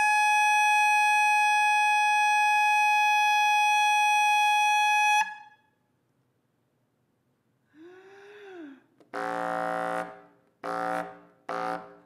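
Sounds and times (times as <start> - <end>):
room echo: 0.0 - 12.0.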